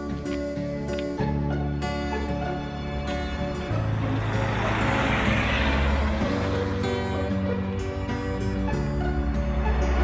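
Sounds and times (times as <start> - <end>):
background music: 0.0 - 10.0
car passing: 1.7 - 10.0.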